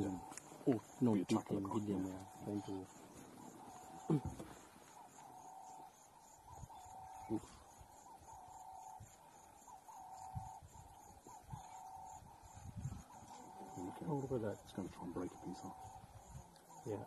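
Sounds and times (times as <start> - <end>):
bird hoots or coos: 0.0 - 14.7.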